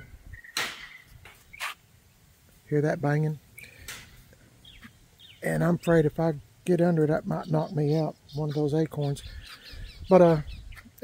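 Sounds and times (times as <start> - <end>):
acorns hitting with sharp bangs: 0.5 - 1.1.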